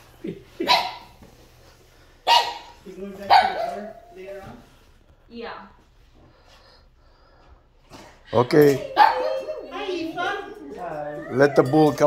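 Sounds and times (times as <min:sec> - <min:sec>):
dog barking: 0:00.6 - 0:01.2, 0:02.3 - 0:04.1, 0:08.9 - 0:09.6.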